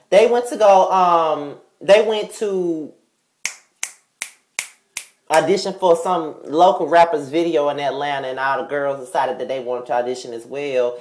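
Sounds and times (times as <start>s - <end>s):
fingers snapping: 3.4s - 5.4s.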